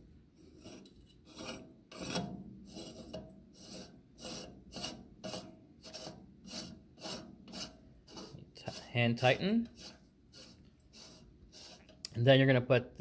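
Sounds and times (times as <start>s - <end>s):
metal threads rasping: 0.4s - 12.1s.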